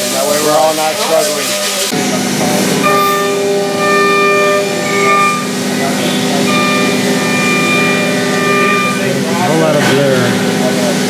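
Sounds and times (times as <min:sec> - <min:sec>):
machine spindle whine: 0:02.0 - 0:11.0.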